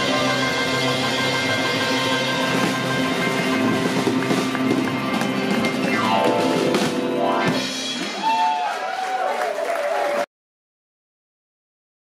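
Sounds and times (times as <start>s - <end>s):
upright double bass: 0.0s - 7.9s
drum kit playing steady beat: 0.0s - 8.7s.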